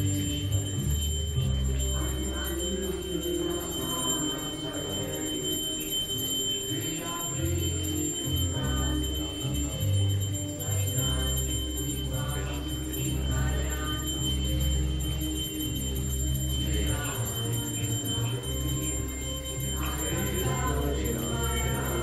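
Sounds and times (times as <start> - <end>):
low sustained drone: 0.0 - 22.0
ringing metal percussion: 0.0 - 22.0.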